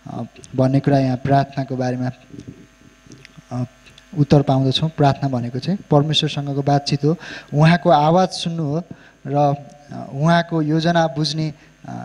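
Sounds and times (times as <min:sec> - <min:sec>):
man speaking into a microphone: 0:00.0 - 0:02.6, 0:03.5 - 0:12.0.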